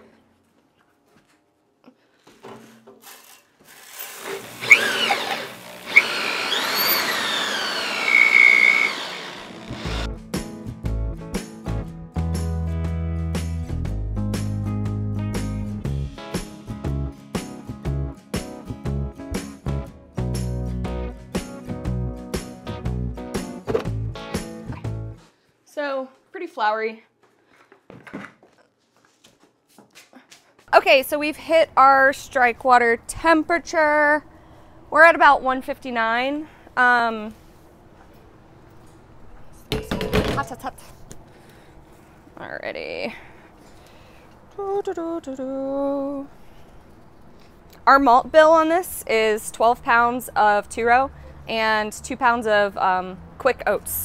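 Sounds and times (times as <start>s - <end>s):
grain mill crushing barley: 3.2s - 10.1s
drill motor whine: 4.2s - 10.1s.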